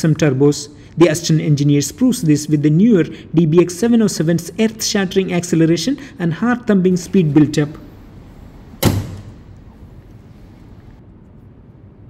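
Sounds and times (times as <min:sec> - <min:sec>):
low hiss: 0:00.0 - 0:12.0
heavy slam: 0:08.1 - 0:09.6.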